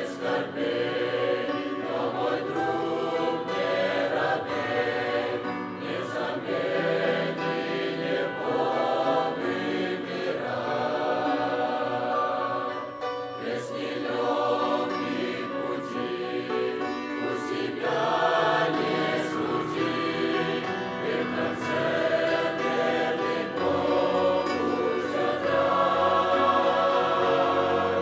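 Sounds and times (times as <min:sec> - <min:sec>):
choir singing a hymn: 0:00.0 - 0:28.0.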